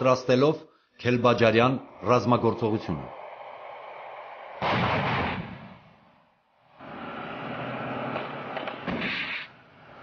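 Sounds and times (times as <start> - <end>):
loud artillery blast: 4.6 - 5.9.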